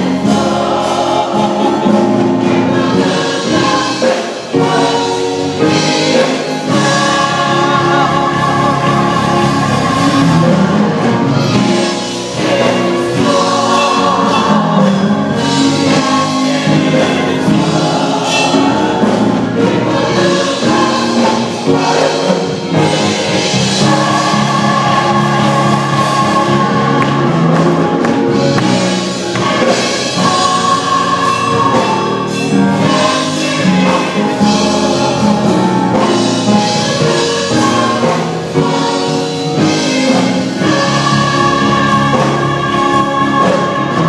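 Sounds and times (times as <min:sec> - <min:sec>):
gospel choir singing: 0:00.0 - 0:44.0.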